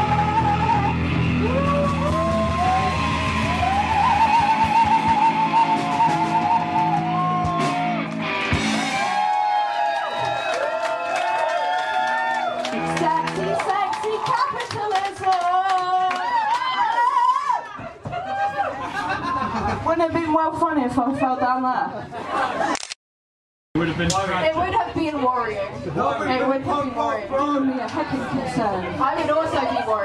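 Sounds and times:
woman singing long wavering notes: 0:00.0 - 0:07.4
punk rock band playing: 0:00.0 - 0:09.6, 0:12.7 - 0:14.2.

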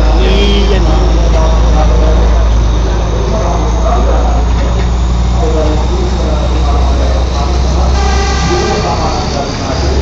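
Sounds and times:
high steady tone: 0:00.0 - 0:04.4
carriages rumbling: 0:00.0 - 0:10.0
diesel train engine drone: 0:00.0 - 0:10.0
passengers' voices: 0:00.0 - 0:10.0.

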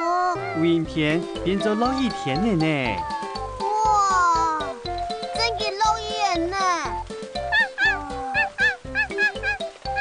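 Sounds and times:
children's music with beat: 0:00.3 - 0:10.0
cartoon dog yelps: 0:07.5 - 0:10.0.

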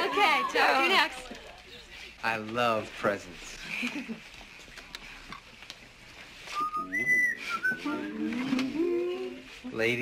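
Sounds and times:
person whistling: 0:06.6 - 0:08.2.

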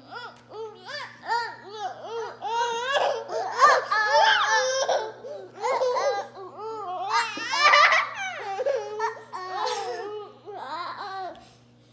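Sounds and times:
toddler laughing and giggling: 0:00.1 - 0:11.4.

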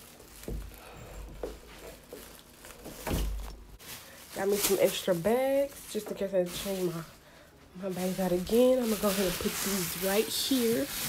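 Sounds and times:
plastic trash bag rustling: 0:00.0 - 0:11.0.

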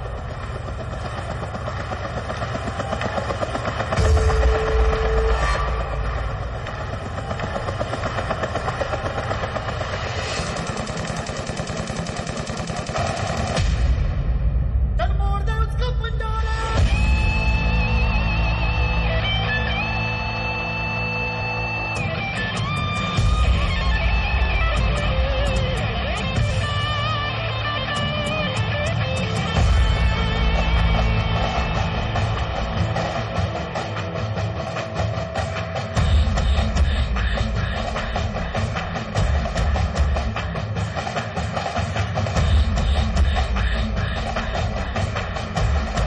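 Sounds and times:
bass: 0:00.0 - 0:09.0, 0:13.6 - 0:41.0
steady drum beat: 0:00.0 - 0:19.5, 0:22.0 - 0:46.0
electric guitar: 0:16.5 - 0:46.0.

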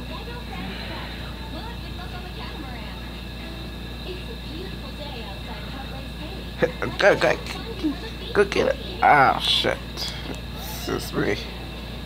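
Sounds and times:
faint muffled voices: 0:00.0 - 0:12.0
steady hum and hiss: 0:00.0 - 0:12.0.

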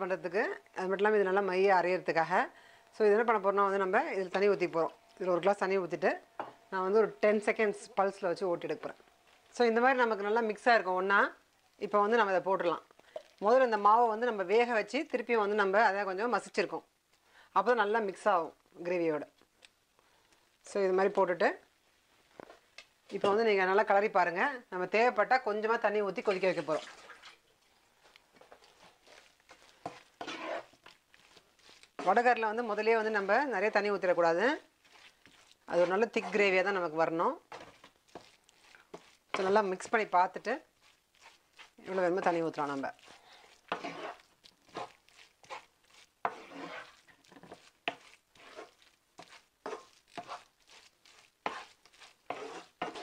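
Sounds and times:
spatula scraping frying pan: 0:28.4 - 0:53.0.

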